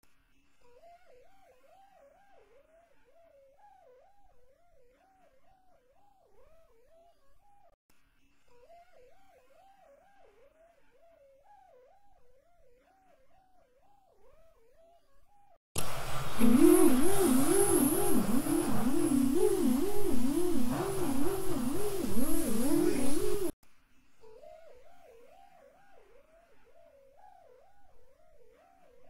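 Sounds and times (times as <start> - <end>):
warbling electronic tone: 16.2 - 23.5.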